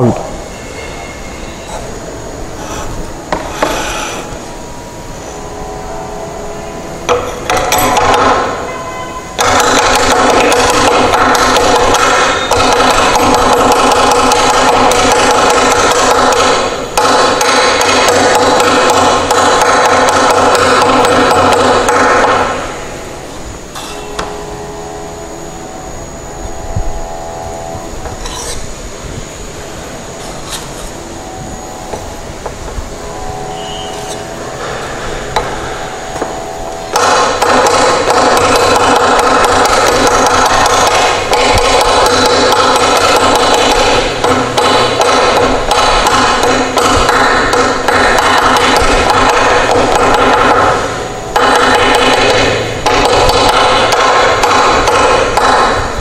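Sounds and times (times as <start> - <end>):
machine drone with pitched hum: 0.0 - 56.0
trowel scraping and knocking: 28.2 - 28.6.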